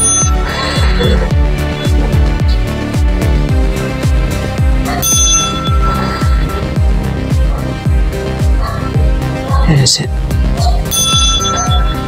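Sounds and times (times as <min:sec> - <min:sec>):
small brass bell ringing: 0:00.0 - 0:02.0, 0:04.9 - 0:07.7, 0:10.9 - 0:12.0
electronic music with steady beat: 0:00.0 - 0:12.0.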